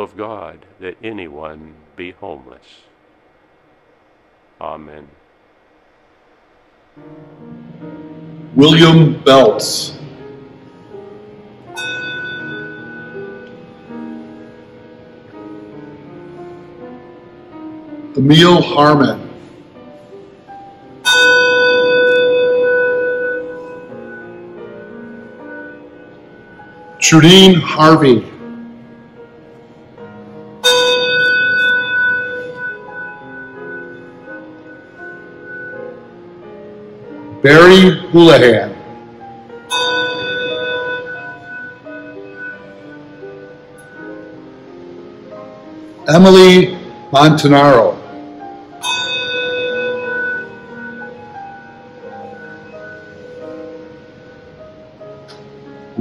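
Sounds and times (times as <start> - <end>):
soft piano music: 0.0 - 2.8, 6.3 - 56.0
handbell ringing: 11.8 - 13.5, 21.0 - 24.2, 30.6 - 35.8, 39.7 - 43.2, 48.8 - 51.6.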